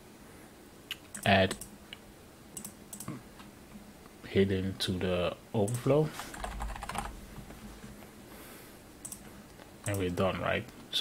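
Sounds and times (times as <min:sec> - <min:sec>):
keyboard typing: 0:02.6 - 0:03.2, 0:05.7 - 0:07.2, 0:09.0 - 0:10.2.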